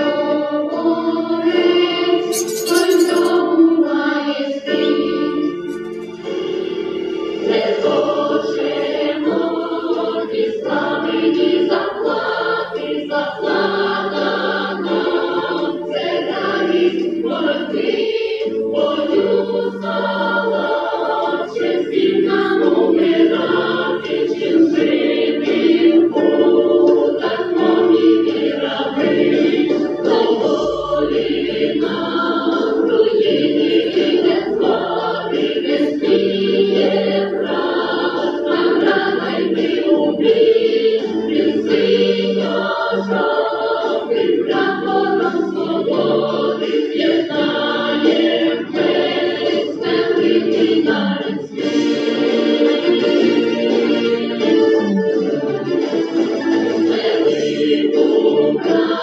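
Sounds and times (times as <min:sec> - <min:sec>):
choir singing a slow hymn: 0:00.0 - 0:02.3, 0:03.4 - 0:54.8, 0:56.8 - 0:59.0.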